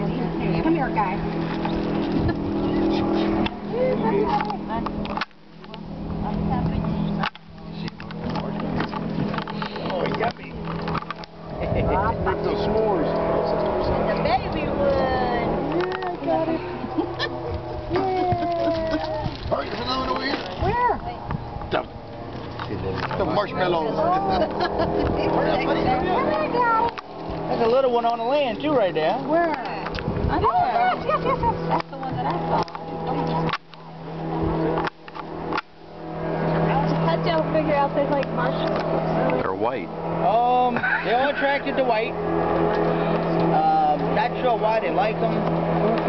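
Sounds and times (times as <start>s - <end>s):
airboat engine and propeller: 0.0s - 46.0s
excited voices: 15.0s - 20.0s, 30.3s - 31.8s.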